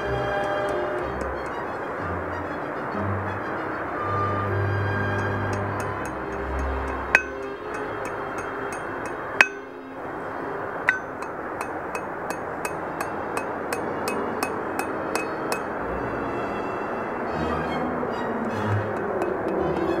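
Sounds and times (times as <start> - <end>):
hammer striking steel on anvil: 5.2 - 9.8, 10.9 - 15.7, 18.9 - 20.0.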